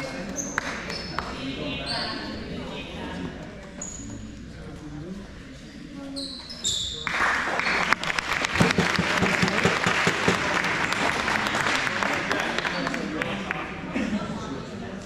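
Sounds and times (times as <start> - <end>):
crowd clapping and cheering: 7.0 - 13.8.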